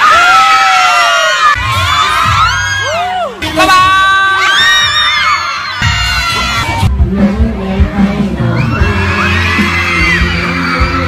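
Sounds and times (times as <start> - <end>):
crowd shouting and cheering: 0.0 - 11.0
low bass sound: 5.8 - 11.0.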